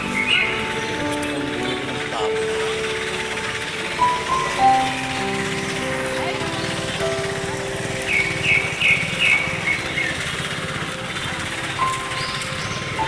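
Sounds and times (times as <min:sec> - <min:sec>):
music: 0:00.0 - 0:13.0
traffic noise: 0:00.0 - 0:13.0
voices: 0:00.0 - 0:13.0.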